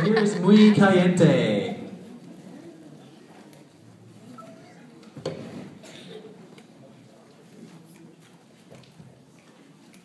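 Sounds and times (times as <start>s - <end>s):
faint audience murmur: 0.0s - 10.0s.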